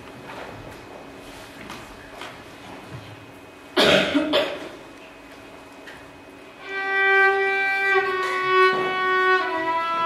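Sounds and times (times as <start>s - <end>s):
person coughing: 3.8s - 4.8s.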